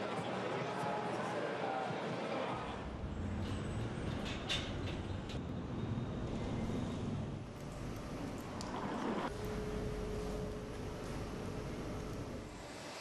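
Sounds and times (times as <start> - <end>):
low rumble of traffic: 2.8 - 12.7.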